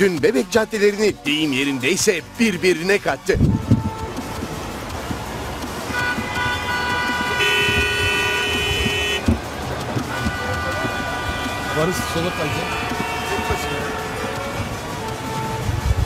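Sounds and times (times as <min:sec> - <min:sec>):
street traffic: 0:00.0 - 0:16.0
car horns: 0:01.3 - 0:16.0.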